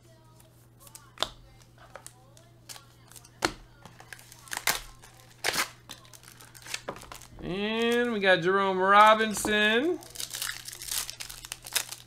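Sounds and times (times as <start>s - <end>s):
trading cards being handled: 0.3s - 8.2s, 8.9s - 12.0s.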